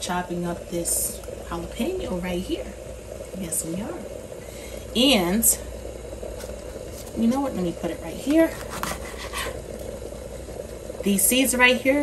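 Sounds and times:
low steady hum: 0.0 - 12.0
knife cutting on wooden board: 8.5 - 9.5.

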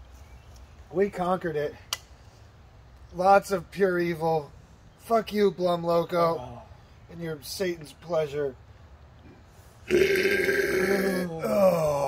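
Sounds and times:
man groaning: 9.9 - 12.0.

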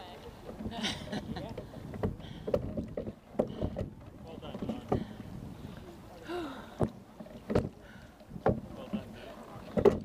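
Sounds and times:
water rushing along hull: 0.0 - 10.0.

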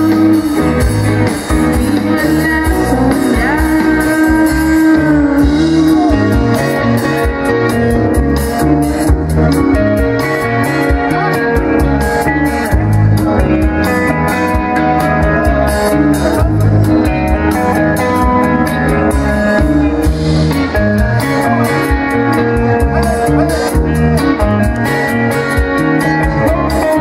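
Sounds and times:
bass guitar: 0.0 - 27.0
electric guitars playing melody: 0.0 - 27.0
steady drum beat: 0.0 - 27.0.

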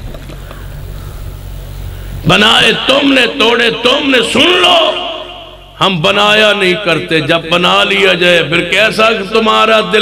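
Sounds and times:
background noise: 0.0 - 10.0
steady low hum: 0.0 - 10.0.

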